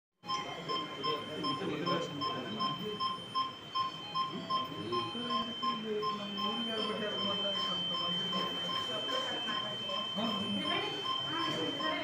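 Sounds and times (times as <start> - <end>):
equipment alarm beeping rapidly: 0.2 - 12.0
steady high tone: 0.2 - 12.0.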